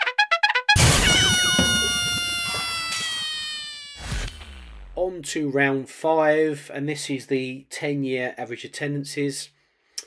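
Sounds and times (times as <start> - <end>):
sudden loud hit: 0.8 - 2.6.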